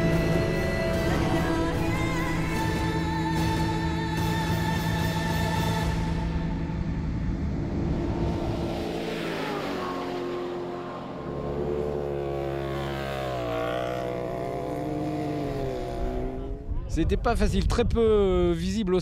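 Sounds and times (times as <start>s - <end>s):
buggy engines revving: 0.0s - 16.8s.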